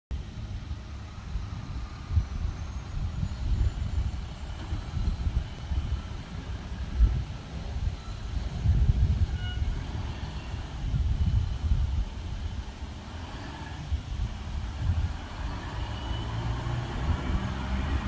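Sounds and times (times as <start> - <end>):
garbage truck engine rumbling: 0.1 - 18.0.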